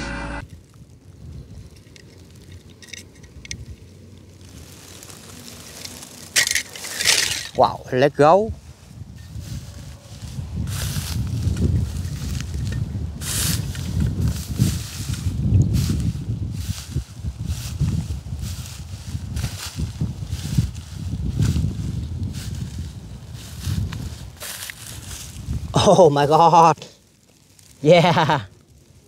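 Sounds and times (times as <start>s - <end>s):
footsteps through dry straw: 3.6s - 29.0s.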